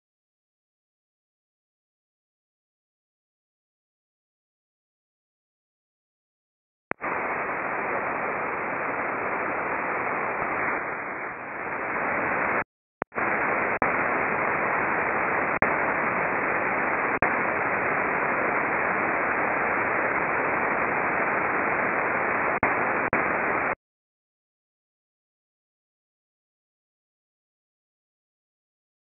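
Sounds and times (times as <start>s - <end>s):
radio static hiss: 6.9s - 23.8s.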